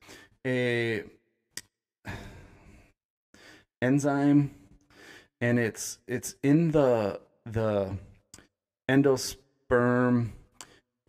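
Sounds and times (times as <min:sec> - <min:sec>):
speech: 0:00.5 - 0:01.2, 0:03.8 - 0:04.6, 0:05.4 - 0:08.1, 0:08.9 - 0:10.4
man sighing: 0:02.1 - 0:02.9.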